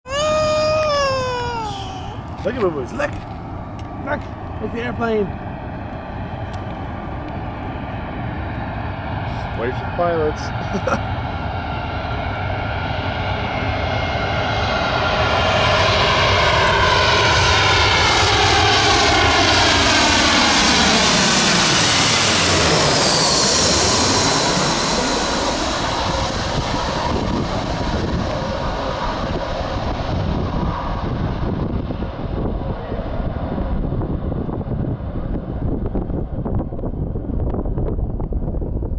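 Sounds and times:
jet airliner passing overhead: 0.1s - 38.9s.

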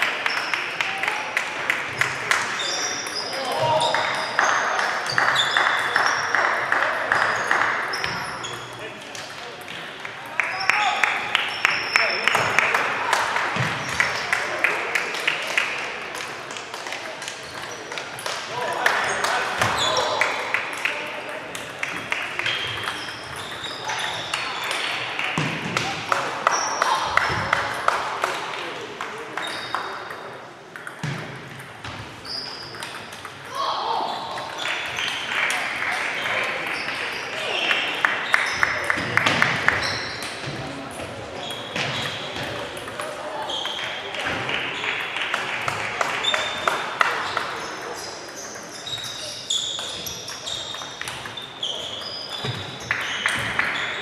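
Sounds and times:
table tennis balls clicking: 20.6s - 25.5s, 29.3s - 31.8s, 32.4s - 33.5s, 48.3s - 53.8s
voices and chatter: 32.2s - 54.0s.

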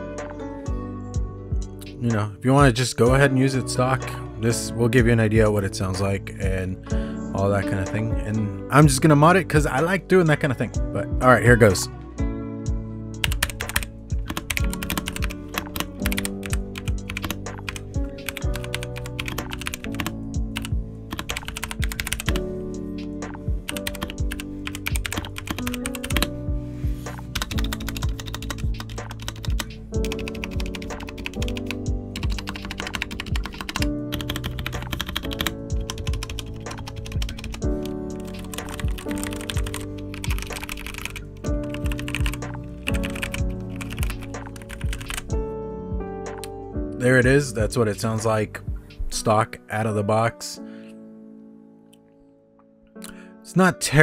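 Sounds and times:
background music: 0.0s - 54.0s.

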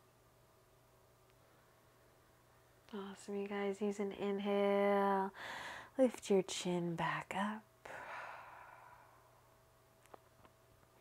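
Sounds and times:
woman exhaling: 7.9s - 9.2s.

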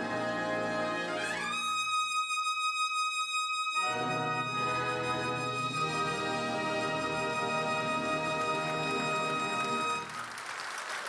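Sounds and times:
brass band music: 0.0s - 10.2s.

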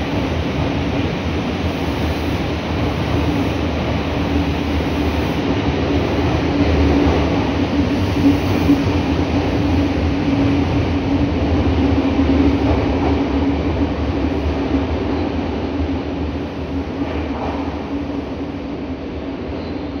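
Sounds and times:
subway train rumbling: 0.0s - 20.0s.

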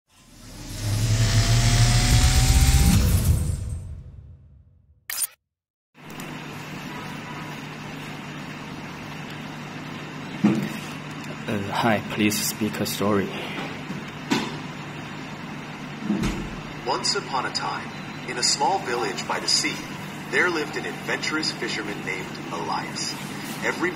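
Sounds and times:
low background hum: 6.0s - 23.9s.

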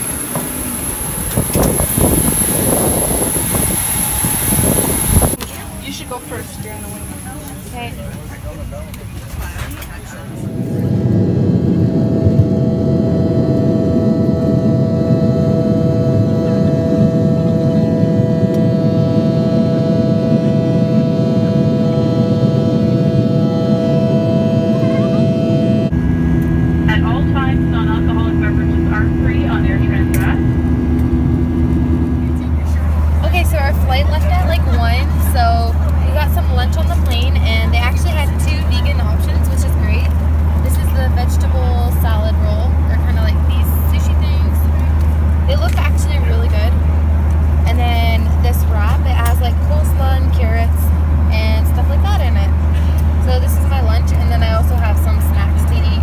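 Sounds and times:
aircraft cabin drone: 0.0s - 56.0s
deep hum: 0.0s - 56.0s
jet engines roaring with high whine: 0.0s - 56.0s
indistinct voices: 5.3s - 46.8s.

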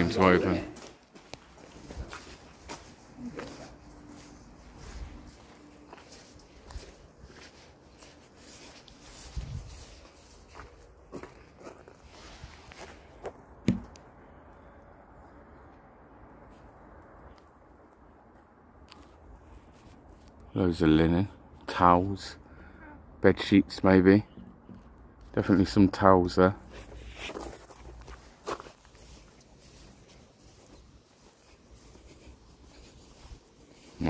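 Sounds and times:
footsteps walking: 0.0s - 14.0s, 16.4s - 20.4s, 26.4s - 34.0s.

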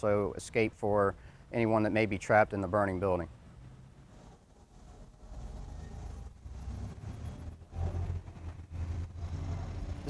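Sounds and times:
vehicle engine rumbling: 3.3s - 10.0s.

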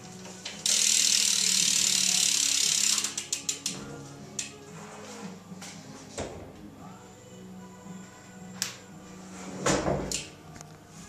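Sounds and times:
bicycle hub ratcheting: 0.6s - 3.8s.

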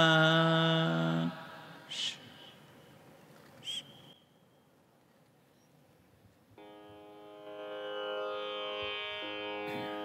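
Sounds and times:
faint background hiss: 0.0s - 10.0s
bird chirp: 5.4s - 5.8s.

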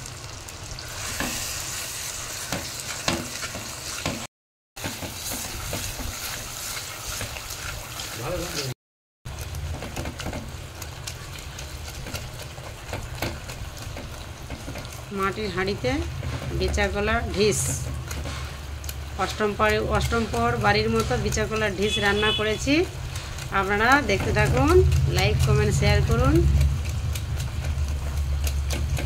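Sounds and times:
mash sizzling in pot: 0.0s - 29.0s
whisk scraping pot: 9.3s - 29.0s.

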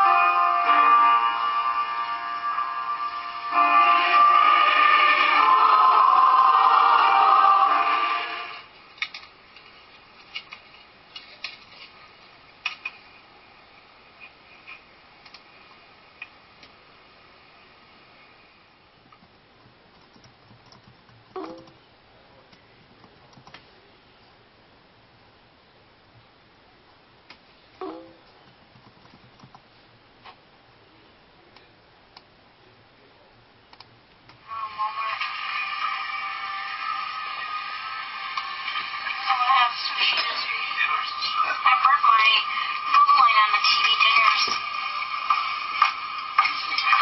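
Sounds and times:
tinny music from laptop speakers: 0.0s - 8.8s, 20.0s - 21.9s, 34.4s - 47.0s
faint steady hiss: 0.0s - 47.0s
laptop keys clicking: 19.1s - 21.8s, 22.8s - 23.6s, 28.5s - 29.6s
soft clicks: 33.7s - 34.4s.

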